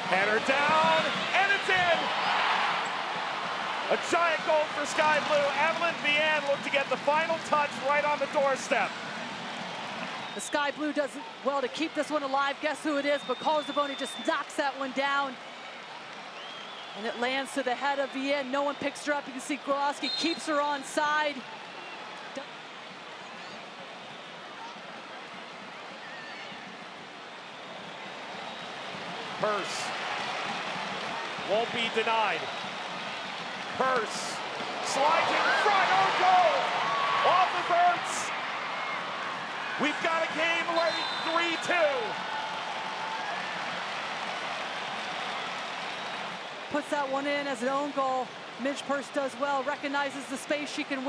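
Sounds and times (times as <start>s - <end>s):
stadium atmosphere hiss: 0.0s - 51.0s
distant players shouting: 34.0s - 43.2s.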